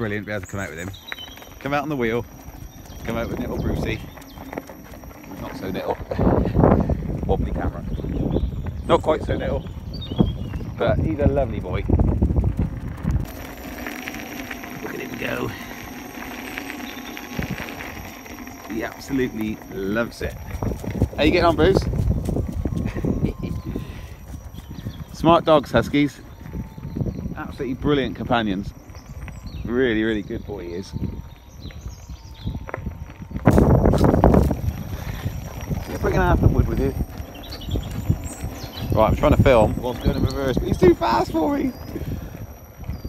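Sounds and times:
dog paws trotting on gravel: 0:00.0 - 0:43.0
tyre and wind rumble: 0:00.0 - 0:43.0
electric motor hum: 0:00.6 - 0:08.8, 0:09.8 - 0:43.0.

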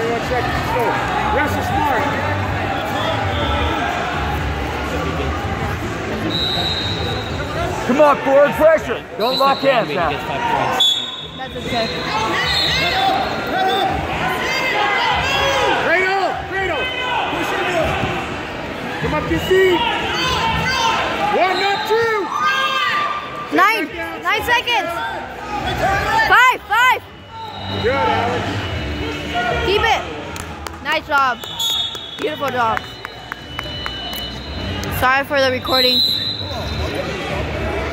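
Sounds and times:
background voices and hubbub: 0:00.0 - 0:37.9.

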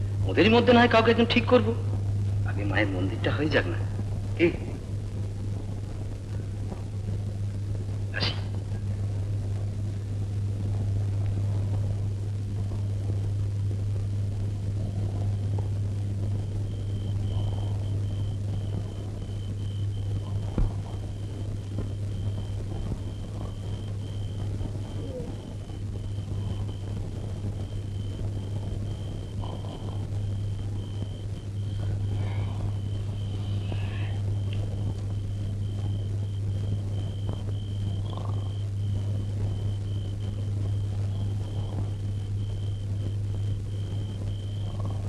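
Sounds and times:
faint broken high whine: 0:00.0 - 0:45.0
low film soundtrack hum: 0:00.0 - 0:45.0
pulsing high-pitched tone: 0:14.8 - 0:45.0.

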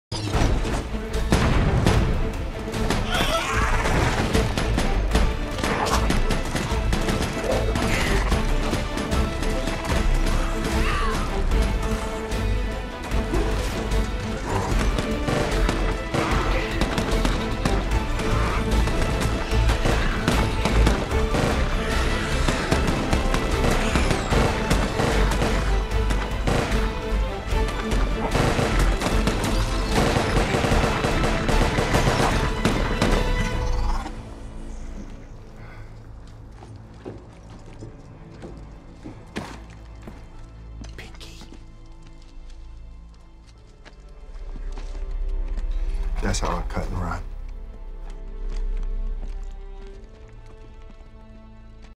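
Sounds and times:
action film music: 0:00.1 - 0:51.9
rapid rifle gunfire: 0:14.9 - 0:18.0, 0:18.8 - 0:25.8, 0:28.3 - 0:33.2.

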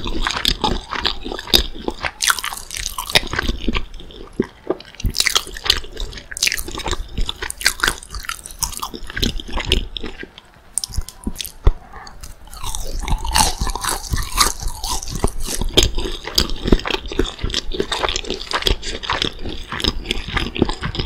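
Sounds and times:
chewing crispy fried chicken: 0:00.0 - 0:21.0.

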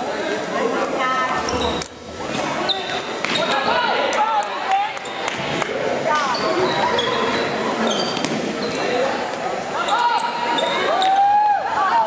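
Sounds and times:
voices of players and spectators: 0:00.0 - 0:12.0.

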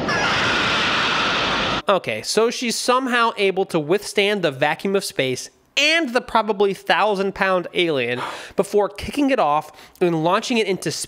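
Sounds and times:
creature shrieking: 0:00.0 - 0:01.8.

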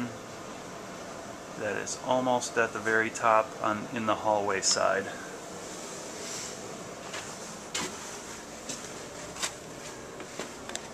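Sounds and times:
steady background hiss: 0:00.0 - 0:10.9.

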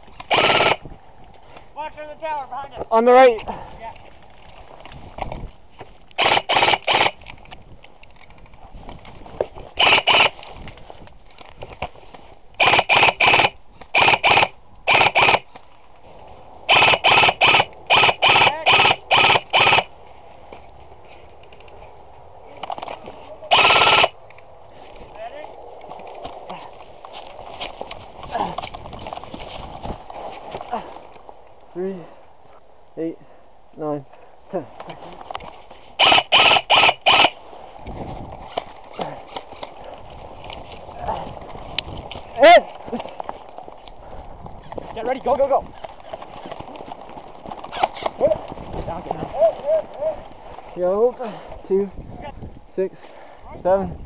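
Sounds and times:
airsoft rifle firing: 0:00.3 - 0:00.8, 0:06.2 - 0:07.2, 0:12.6 - 0:15.5, 0:16.7 - 0:19.9, 0:23.5 - 0:24.2, 0:36.0 - 0:37.4.

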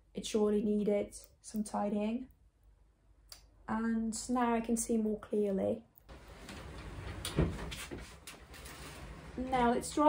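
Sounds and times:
sliding wardrobe door rumbling: 0:06.1 - 0:10.0.

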